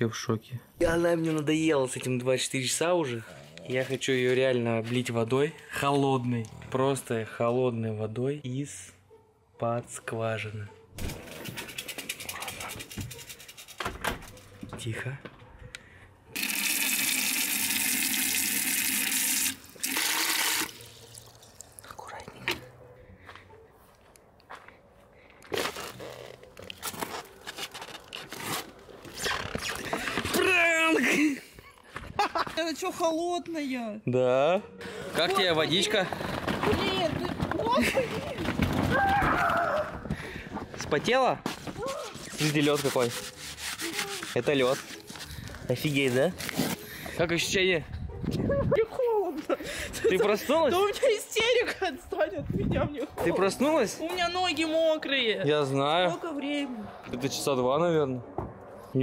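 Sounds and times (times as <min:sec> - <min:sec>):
phone rubbing on fabric: 0:42.2 - 0:45.1.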